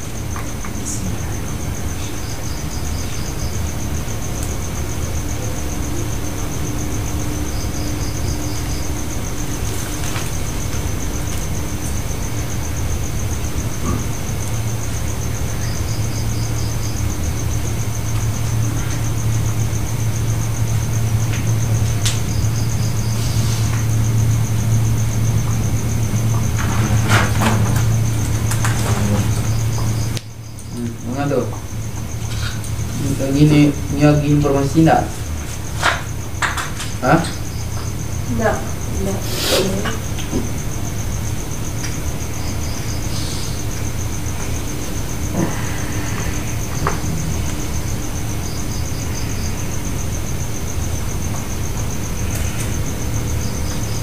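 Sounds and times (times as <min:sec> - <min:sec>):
low hum: 0:00.0 - 0:39.2.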